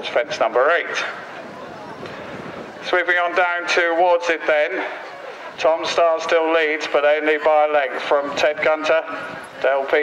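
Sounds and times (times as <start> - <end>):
faint distant voices: 0.0 - 10.0
outdoor background noise: 0.0 - 10.0.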